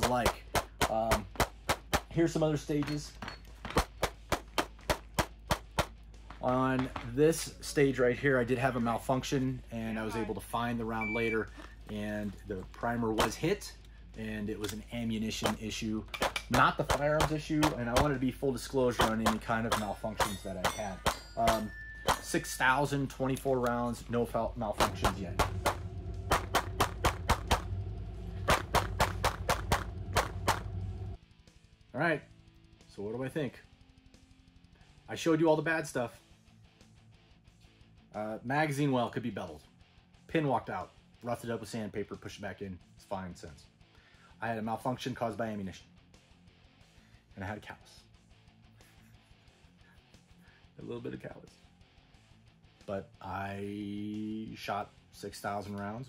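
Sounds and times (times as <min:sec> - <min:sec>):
low rumble: 0:24.0 - 0:31.8.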